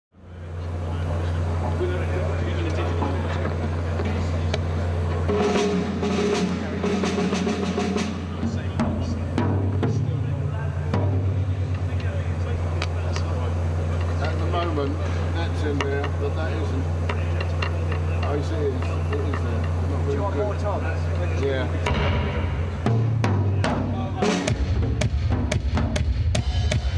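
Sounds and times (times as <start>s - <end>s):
loud low electrical hum: 0.1s - 26.9s
drum hits: 4.6s - 12.9s, 21.7s - 26.9s.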